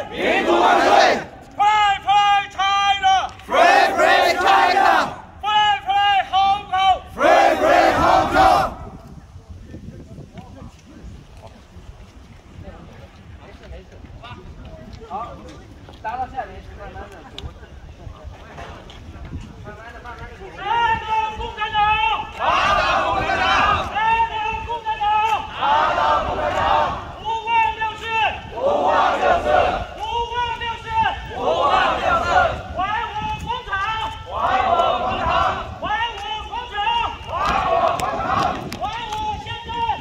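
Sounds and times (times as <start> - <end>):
crowd shouting slogans: 0.0 - 8.8, 21.6 - 27.2, 28.3 - 30.2, 31.1 - 33.2, 34.2 - 38.8
wind rumble on microphone: 6.3 - 40.0.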